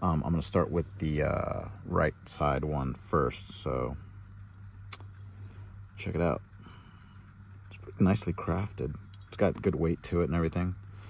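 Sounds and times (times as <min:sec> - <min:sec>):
low hum: 0:00.0 - 0:11.0
sharp click: 0:04.9 - 0:05.2.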